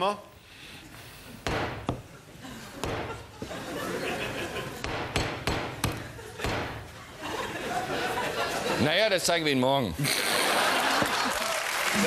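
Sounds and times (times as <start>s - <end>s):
hammer strikes: 1.4s - 2.1s, 2.8s - 3.2s, 4.8s - 6.9s.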